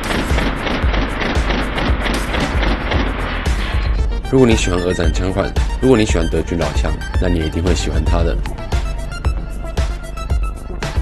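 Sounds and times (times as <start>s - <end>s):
airsoft gun firing full-auto: 0.0s - 3.1s
background music: 0.0s - 11.0s.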